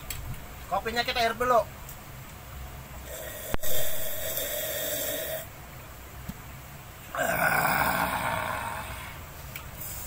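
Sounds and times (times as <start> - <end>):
person slurping coffee: 3.1 - 5.5.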